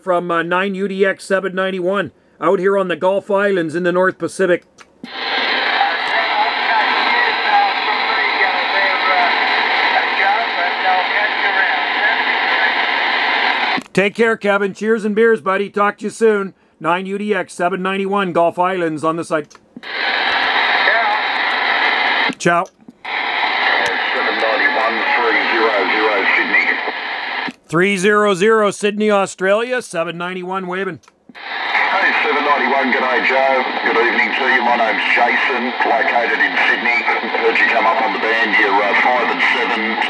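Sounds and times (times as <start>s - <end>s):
radio static: 5.0s - 14.0s, 19.8s - 27.6s, 29.6s - 40.0s
weak garbled radio voice: 5.0s - 14.0s, 19.8s - 27.6s, 30.4s - 40.0s.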